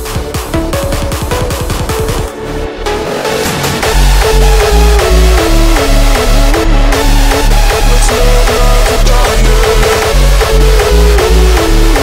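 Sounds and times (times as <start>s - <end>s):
heavy kick drum: 0.0s - 2.3s, 3.6s - 12.0s
synth melody: 0.0s - 12.0s.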